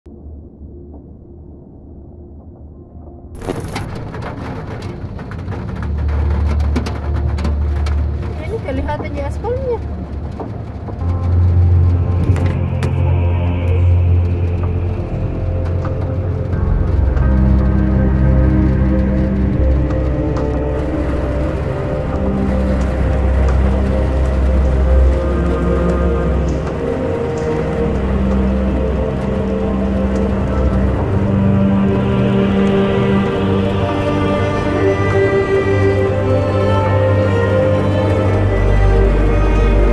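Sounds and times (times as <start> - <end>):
music of low held chords: 0.1 - 39.9.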